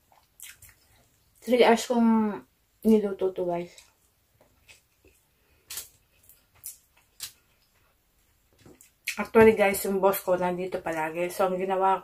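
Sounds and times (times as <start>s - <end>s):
person chewing: 0.0s - 1.4s, 3.8s - 9.2s.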